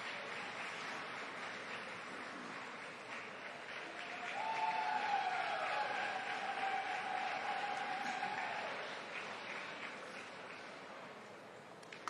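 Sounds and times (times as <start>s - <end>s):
audience applauding: 0.0s - 11.3s
long high cheer: 3.7s - 9.9s.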